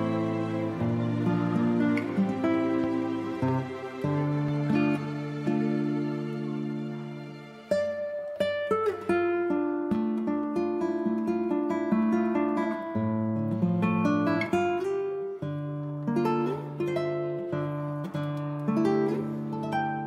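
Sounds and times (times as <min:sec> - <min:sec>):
acoustic guitar picking: 0:00.0 - 0:20.0.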